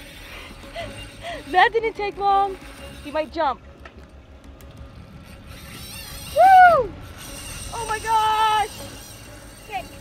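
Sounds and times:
fishing reel clicking and whirring: 0.0 - 10.0.

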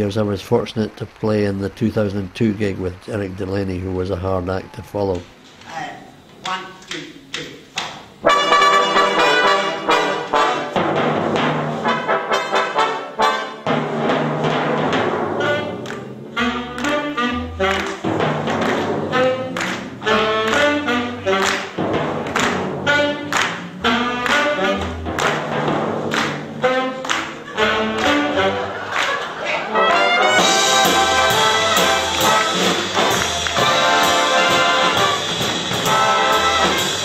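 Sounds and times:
deep timpani strokes: 8.2 - 28.8, 29.7 - 37.0
jazz big band playing: 8.2 - 37.0.

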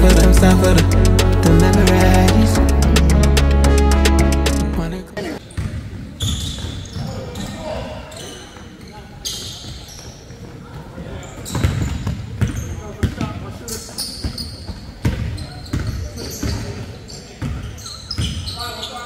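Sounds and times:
music with heavy bass beat: 0.0 - 5.1
players' voices: 0.0 - 5.5
sneakers squeaking: 5.4 - 19.0.

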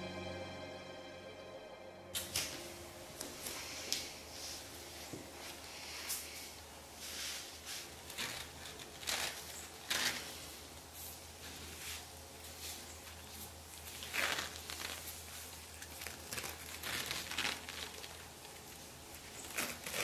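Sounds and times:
low steady hum: 0.0 - 20.0
cloth rustling: 2.2 - 20.0.

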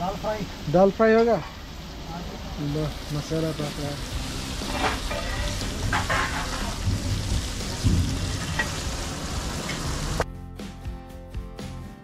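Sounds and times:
paste sizzling in oil: 0.0 - 10.2.

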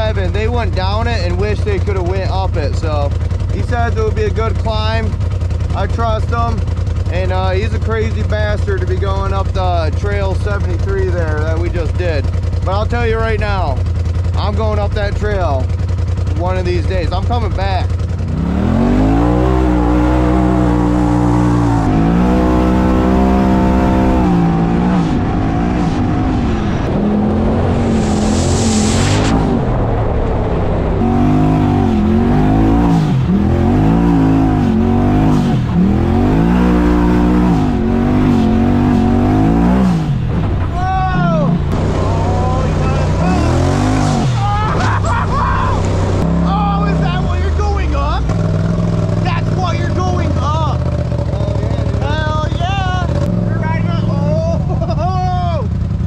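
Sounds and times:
engine revving: 0.0 - 56.0.

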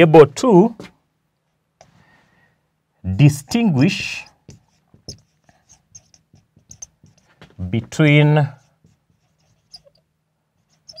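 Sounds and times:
marker squeaking on whiteboard: 3.3 - 11.0.

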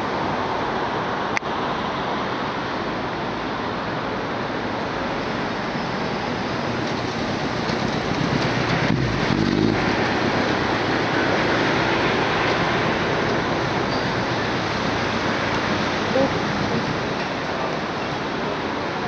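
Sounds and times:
traffic: 0.0 - 19.0
wind noise: 3.8 - 19.0
motorcycle passing close: 8.2 - 12.6.

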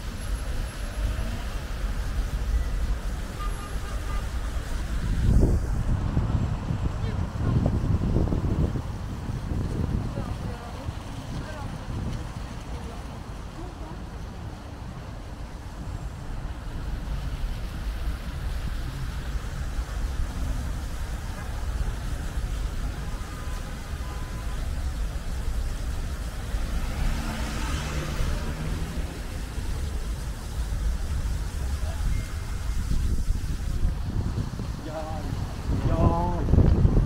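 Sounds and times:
road traffic hum: 0.0 - 37.0
wind rumbling on microphone: 0.0 - 37.0.

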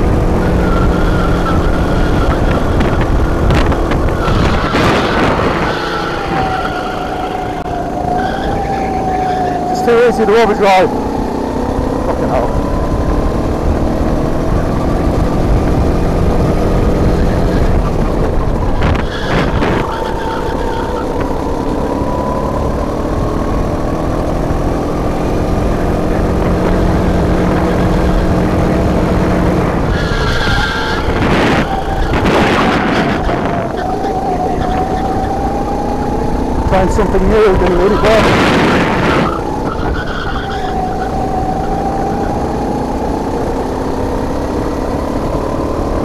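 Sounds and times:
racing kart engine: 0.0 - 46.0
tyre squeal: 0.3 - 10.9, 17.1 - 22.3, 29.8 - 35.6, 37.0 - 42.8.

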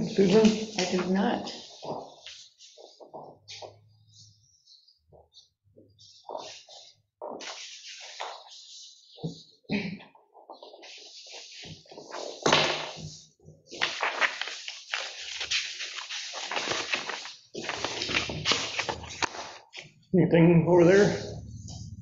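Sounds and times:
paper rustling and pages turning: 0.0 - 9.5, 10.3 - 20.0.

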